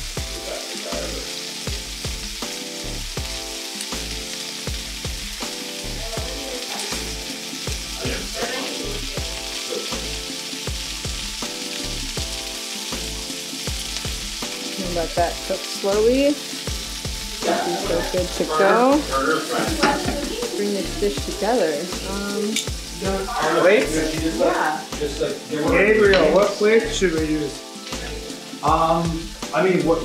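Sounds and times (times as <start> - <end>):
fish sizzling in a pan: 0.0 - 30.0
music with steady bass beat: 0.0 - 30.0.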